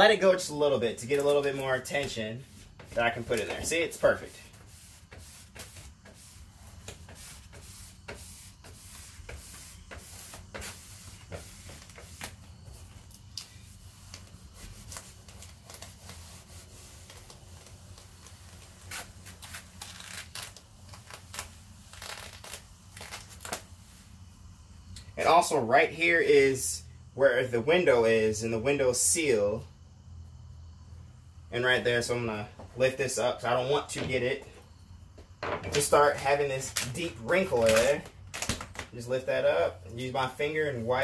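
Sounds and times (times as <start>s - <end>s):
wrap film crackling and rustling: 0.9s - 23.9s, 36.6s - 39.0s.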